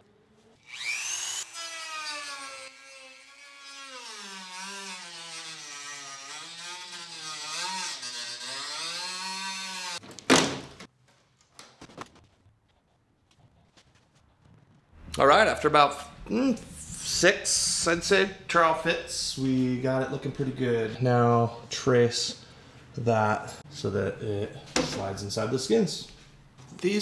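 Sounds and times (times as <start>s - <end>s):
rotary tool cutting plastic: 0.5s - 10.0s.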